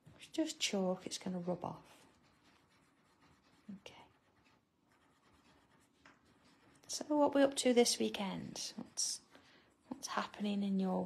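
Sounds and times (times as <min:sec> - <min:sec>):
paper scratching over chalk drawing: 0:00.3 - 0:10.9.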